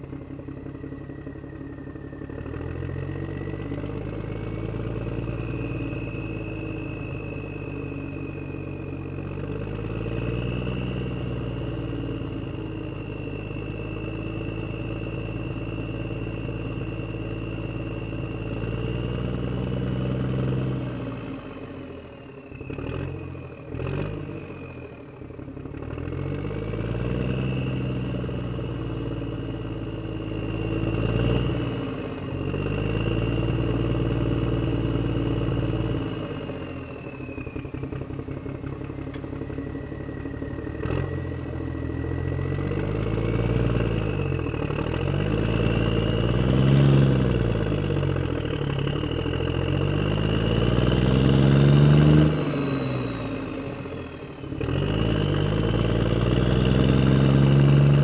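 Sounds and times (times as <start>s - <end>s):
vehicle engine revving: 0.0s - 21.9s, 22.5s - 58.0s.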